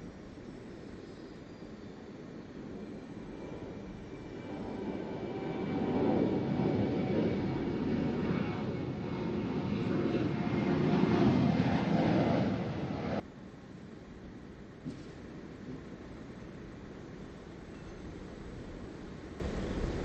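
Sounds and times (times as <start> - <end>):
jet engine whine: 0.0 - 20.0.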